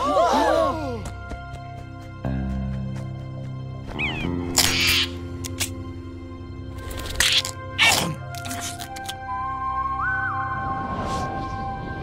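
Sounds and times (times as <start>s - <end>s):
cartoon bird squawk: 4.0s - 5.2s.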